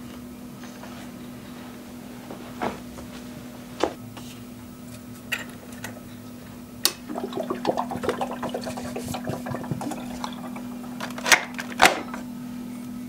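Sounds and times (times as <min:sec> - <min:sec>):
coffee maker hum: 0:05.9 - 0:12.5
water trickling and gurgling: 0:07.1 - 0:11.2.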